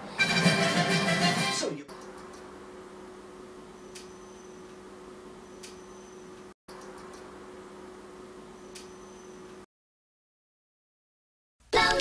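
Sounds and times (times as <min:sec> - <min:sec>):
faint electrical hum: 0:01.9 - 0:09.6.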